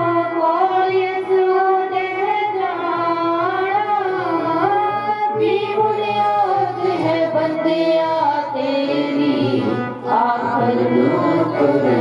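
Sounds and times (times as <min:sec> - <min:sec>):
woman singing into a microphone: 0:00.0 - 0:12.0.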